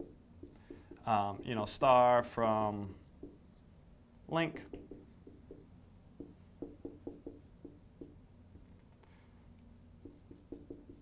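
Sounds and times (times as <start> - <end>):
marker squeaking on whiteboard: 10.0 - 11.0.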